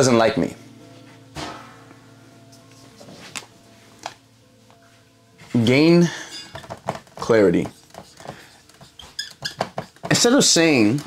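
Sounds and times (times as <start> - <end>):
marker scratching on whiteboard: 7.2 - 10.5
marker squeaks: 7.6 - 10.2.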